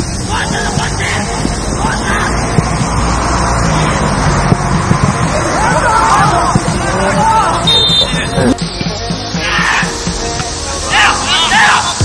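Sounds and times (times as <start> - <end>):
steady low rumble: 0.0 - 8.9
players shouting: 0.0 - 12.0.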